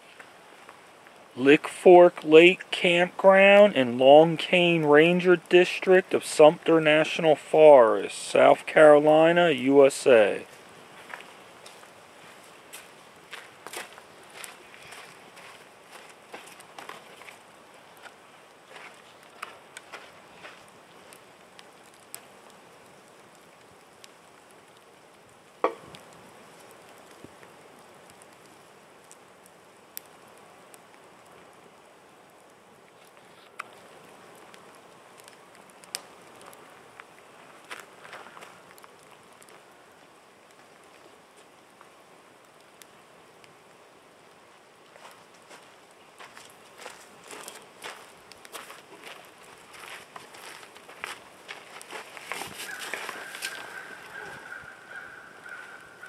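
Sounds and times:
campfire crackling: 0:00.0 - 0:56.0
sharp fire pops: 0:12.7 - 0:31.6, 0:32.9 - 0:39.7.

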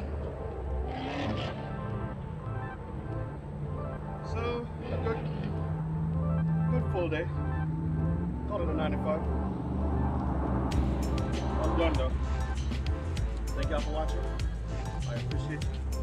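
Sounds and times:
background music with bass line: 0:00.0 - 0:16.0.

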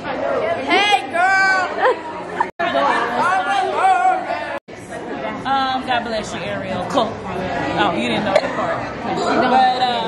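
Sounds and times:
party crowd chatter: 0:00.0 - 0:10.0.

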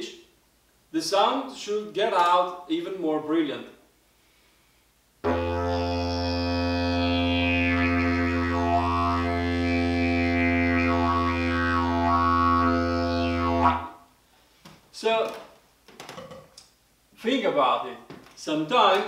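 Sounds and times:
didgeridoo low drone: 0:05.3 - 0:13.9.

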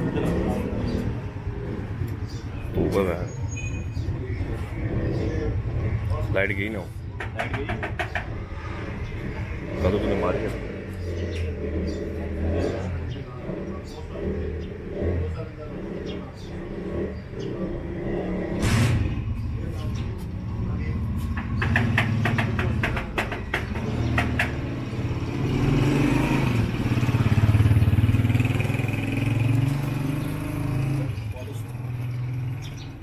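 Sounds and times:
vehicle engine running: 0:00.0 - 0:33.0
voices: 0:00.0 - 0:33.0
sharp knocks: 0:07.1 - 0:08.6, 0:18.5 - 0:19.4, 0:21.3 - 0:25.0.

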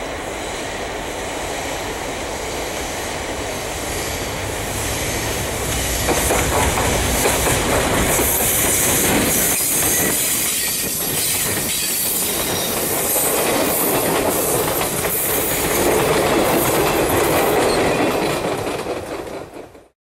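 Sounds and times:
passenger train passing: 0:00.0 - 0:20.0
train wheels on rails: 0:00.0 - 0:20.0.

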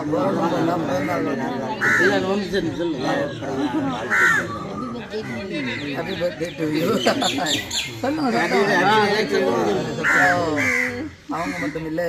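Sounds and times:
people talking in a group: 0:00.0 - 0:12.0
bird calling: 0:03.2 - 0:09.0.

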